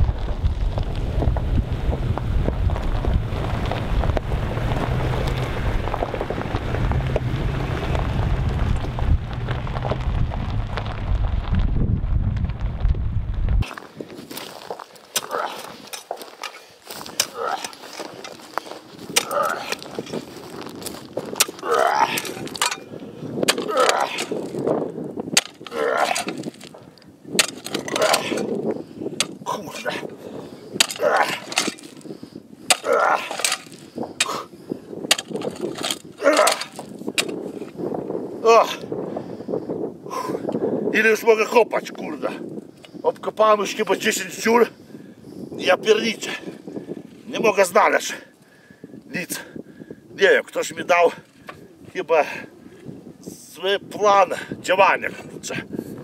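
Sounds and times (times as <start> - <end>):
truck rumble on dirt track: 0.0 - 13.6
wind noise: 0.0 - 56.0
digger crunching into stony ground: 13.6 - 29.4, 30.8 - 32.1, 32.7 - 34.5, 35.1 - 37.7
man grunting: 21.6 - 22.2, 29.4 - 30.1, 31.0 - 31.4, 32.8 - 33.4.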